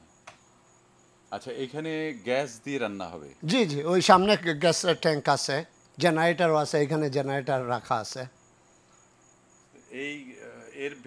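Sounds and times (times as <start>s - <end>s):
insect chirping: 0.0s - 11.0s.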